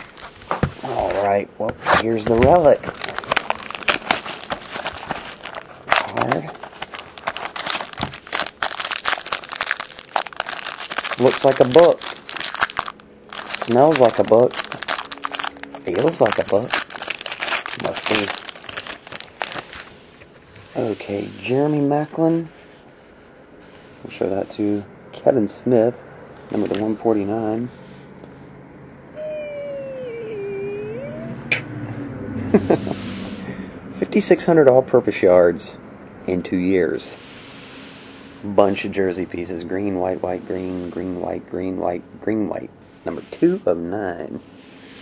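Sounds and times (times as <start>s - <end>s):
plastic wrapper crinkling: 2.0s - 20.0s.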